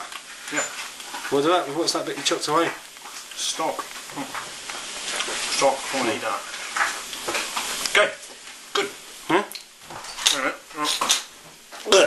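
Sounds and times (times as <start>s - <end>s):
person murmuring: 7.9s - 9.6s, 10.3s - 11.1s.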